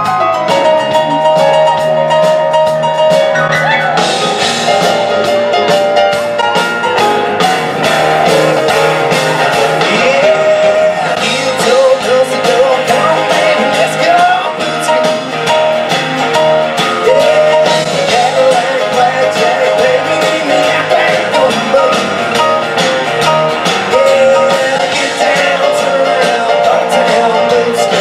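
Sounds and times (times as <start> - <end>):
country rock band playing: 0.0 - 28.0.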